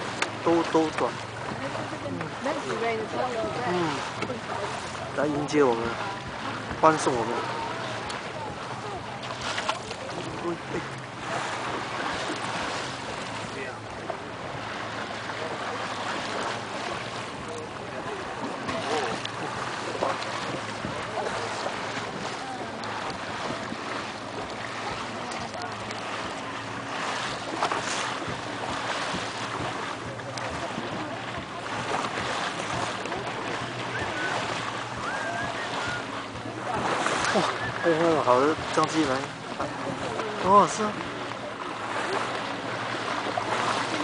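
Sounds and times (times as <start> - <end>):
boat engine hum: 0.0 - 44.0
water rushing along hull: 0.0 - 44.0.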